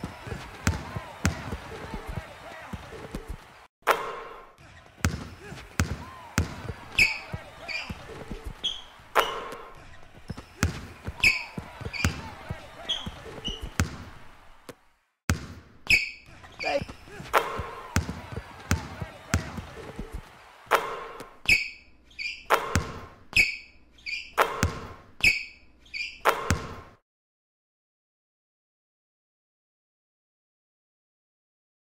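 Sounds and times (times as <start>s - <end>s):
voices: 0.0s - 3.7s, 4.6s - 14.8s, 16.3s - 20.9s
basketball bouncing on hardwood: 0.3s - 2.0s, 5.0s - 8.0s, 10.3s - 14.2s, 15.3s - 15.7s, 18.0s - 19.7s, 22.5s - 23.1s, 24.4s - 25.0s, 26.3s - 26.9s
sneaker squeaks: 4.6s - 14.1s, 15.8s - 18.4s, 21.3s - 26.8s.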